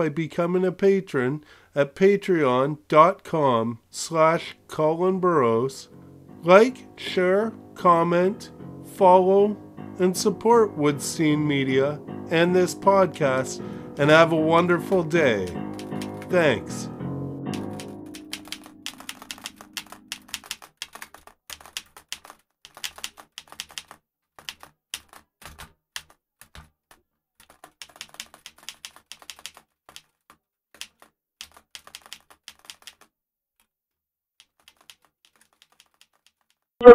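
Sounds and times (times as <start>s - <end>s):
keyboard typing clicks: 15.4s - 16.3s, 17.5s - 26.7s, 27.4s - 30.2s, 30.8s - 33.1s, 34.4s - 36.6s.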